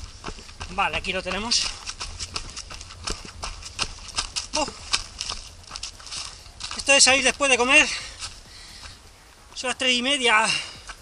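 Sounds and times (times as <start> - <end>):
running footsteps on dry leaves: 0.0 - 9.8, 10.4 - 11.0
person grunting: 4.5 - 4.8.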